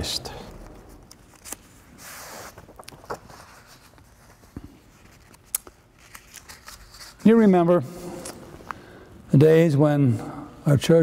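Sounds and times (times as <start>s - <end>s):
paper rustling and clicking: 2.3s - 7.2s.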